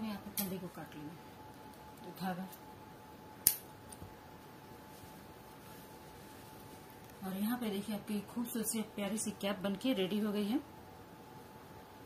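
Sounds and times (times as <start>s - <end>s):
scissors snipping yarn: 3.4s - 3.7s.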